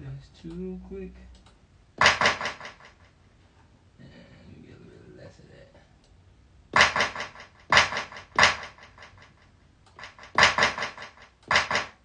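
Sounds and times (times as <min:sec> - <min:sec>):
drum hits with echoes: 0:06.8 - 0:09.2.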